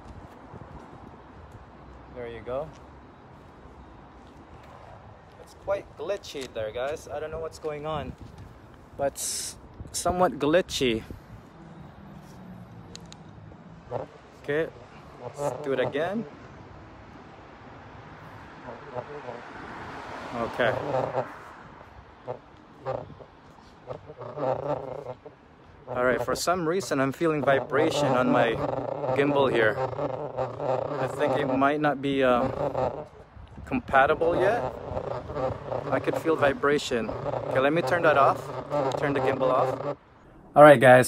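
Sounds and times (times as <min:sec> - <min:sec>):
outdoor background noise: 0:00.0 - 0:41.0.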